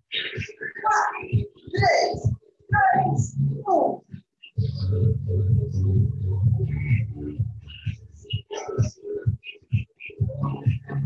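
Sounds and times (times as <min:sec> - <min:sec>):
dense low rumbling: 0:04.6 - 0:08.0.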